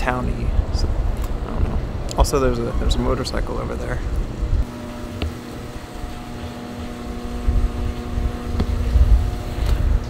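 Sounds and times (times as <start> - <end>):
steady low hum: 0.0 - 10.0
wind buffeting microphone: 0.0 - 10.0.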